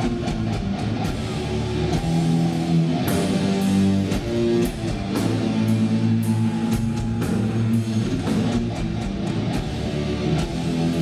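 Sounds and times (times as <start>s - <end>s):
distorted electric guitar chords: 0.0s - 11.0s
drum and cymbal hits: 0.0s - 11.0s.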